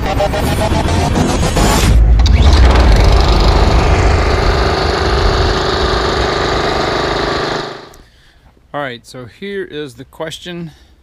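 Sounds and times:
engine-like drone: 0:00.0 - 0:08.0.

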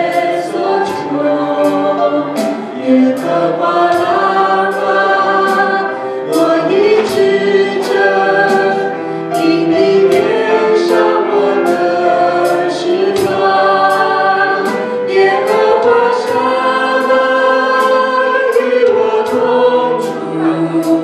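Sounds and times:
band accompaniment: 0:00.0 - 0:21.0
vocalists singing in harmony: 0:00.0 - 0:21.0.

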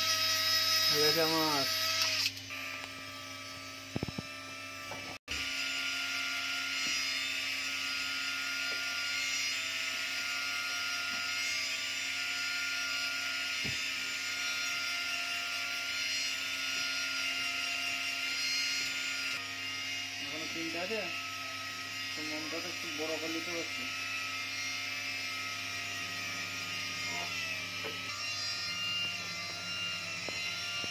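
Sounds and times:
small electric motor whining: 0:00.0 - 0:30.9.

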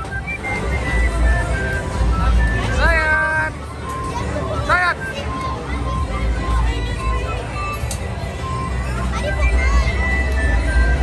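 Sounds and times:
melody of short high notes: 0:00.0 - 0:11.0.

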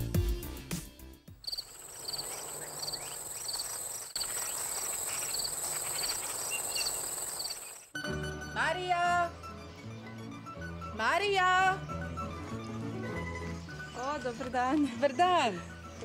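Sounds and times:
music: 0:00.0 - 0:01.4, 0:07.9 - 0:16.0
crickets chirping: 0:01.4 - 0:07.9
high-pitched insect drone: 0:01.5 - 0:07.9.

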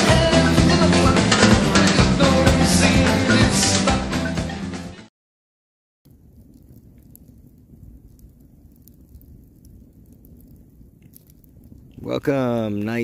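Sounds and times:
campfire crackling and popping: 0:06.0 - 0:13.0.

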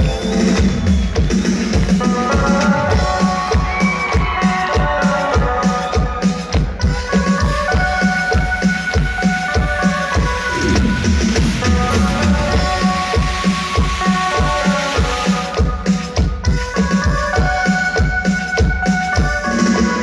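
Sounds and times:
drum kit steady beat: 0:00.0 - 0:20.0
live band instrumental: 0:00.0 - 0:20.0.

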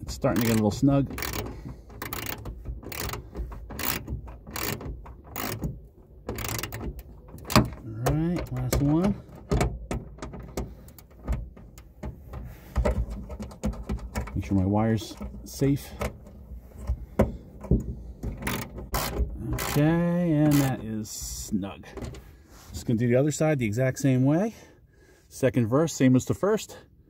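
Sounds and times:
hand ratchet clicking: 0:00.0 - 0:12.1, 0:18.2 - 0:20.8.

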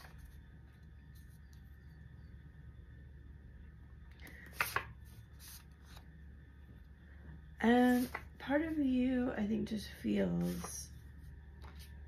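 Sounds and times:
low room hum: 0:00.0 - 0:12.0
paper flicks: 0:04.5 - 0:04.9.

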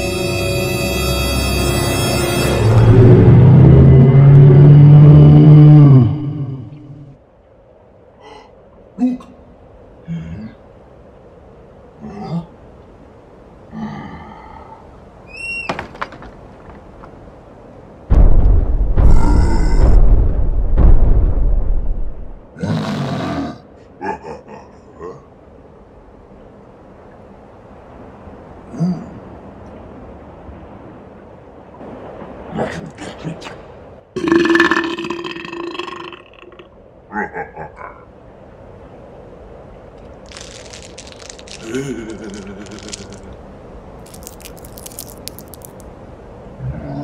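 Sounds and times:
loud low creature roar: 0:03.0 - 0:07.0.

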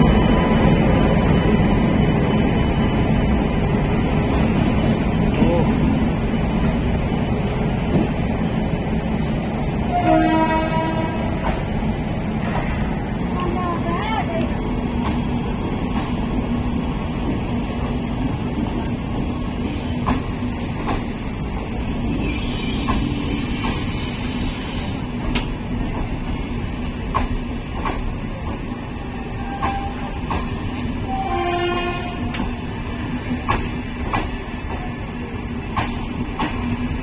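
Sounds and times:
train wheels rumbling on rails: 0:00.0 - 0:37.0
train horn blast: 0:09.9 - 0:11.3, 0:29.4 - 0:30.2, 0:31.0 - 0:32.4.

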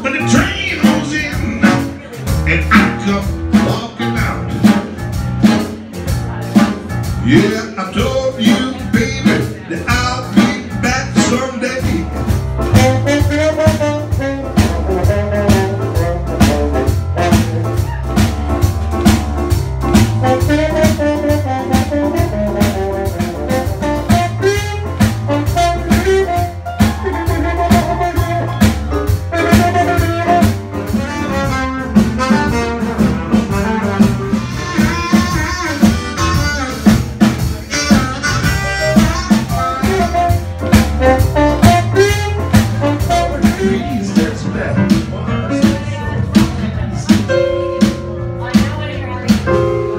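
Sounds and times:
trombone: 0:00.0 - 0:45.8
bass: 0:00.0 - 0:49.9
drum beat: 0:00.0 - 0:49.9
saxophone: 0:12.6 - 0:18.3, 0:19.9 - 0:44.3
harmonica: 0:34.1 - 0:40.1.

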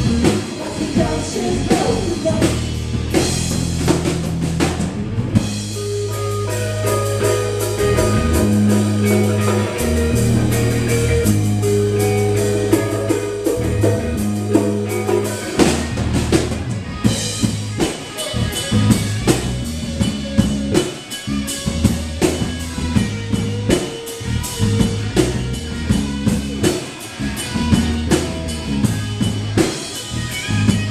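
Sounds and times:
rock band playing: 0:00.0 - 0:30.9.

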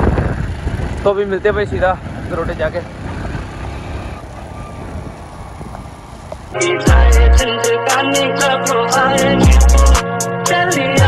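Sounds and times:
vehicle engine and road noise: 0:00.0 - 0:06.6.

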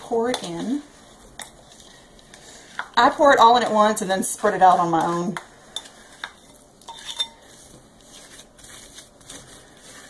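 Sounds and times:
spoon scraping bowl: 0:00.0 - 0:10.0
wooden spoon clinking glass bowl: 0:05.8 - 0:07.4.

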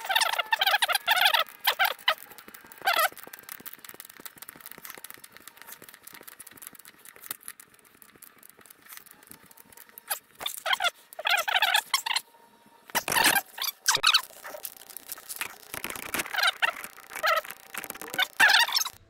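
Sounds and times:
hose fitting squeaking: 0:00.0 - 0:06.2, 0:10.0 - 0:12.2, 0:12.9 - 0:19.0.

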